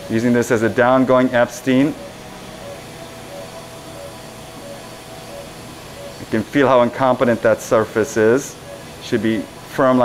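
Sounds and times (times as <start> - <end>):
surgical equipment hiss and hum: 0.0 - 10.0.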